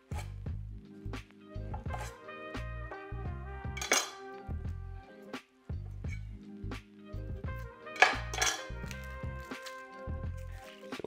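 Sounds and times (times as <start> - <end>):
background music with pulsing bass: 0.2 - 3.8, 4.4 - 10.7
knife cutting on wooden board: 1.7 - 2.2.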